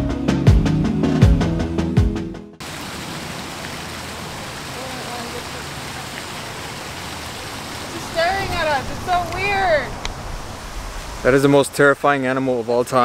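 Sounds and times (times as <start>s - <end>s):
steady rushing outdoor noise: 2.6s - 13.0s
person's voice: 4.7s - 5.8s.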